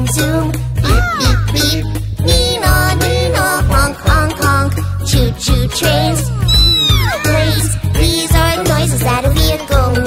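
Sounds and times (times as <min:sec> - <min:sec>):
high voice singing: 0:05.2 - 0:08.7
steady bass beat: 0:05.7 - 0:08.1
whistle-like tone: 0:06.4 - 0:07.4.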